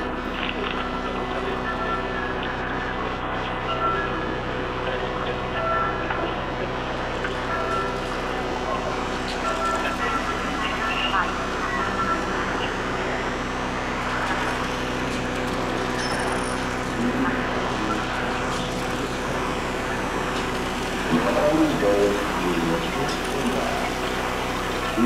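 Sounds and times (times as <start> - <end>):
grainy noisy electronic texture: 0.0 - 25.0
sustained synthesizer drones: 0.0 - 25.0.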